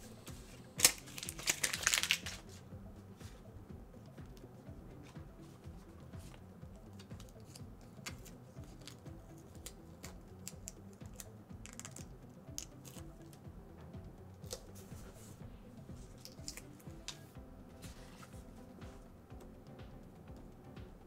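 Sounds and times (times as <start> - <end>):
quiet background music: 0.0 - 21.0
sticker backing paper crinkling: 0.8 - 2.4.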